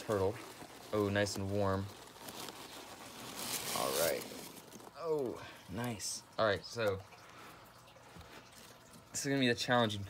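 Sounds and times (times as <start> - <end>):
packing peanuts and bag rustling: 0.0 - 6.2.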